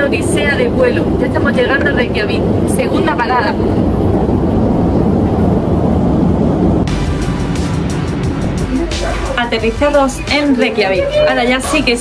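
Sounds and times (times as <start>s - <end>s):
airliner cabin drone: 0.0s - 12.0s
background music with a beat: 6.9s - 12.0s.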